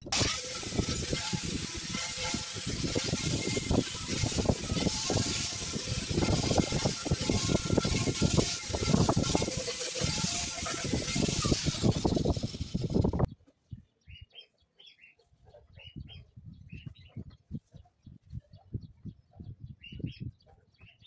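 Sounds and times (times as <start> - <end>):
angle grinder grinding steel: 0.0 - 13.3
birds chirping: 13.2 - 21.0.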